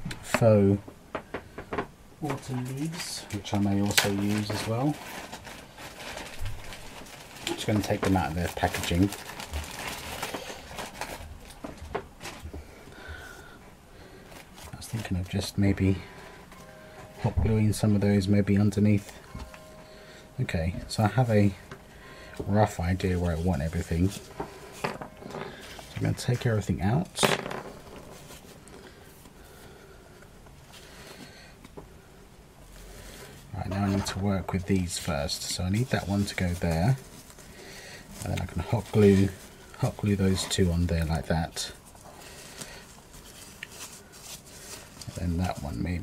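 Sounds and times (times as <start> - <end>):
packaging rustling and crinkling: 1.7 - 12.7, 14.1 - 30.0, 32.7 - 46.0
feathers rustling and scraping: 33.0 - 41.1.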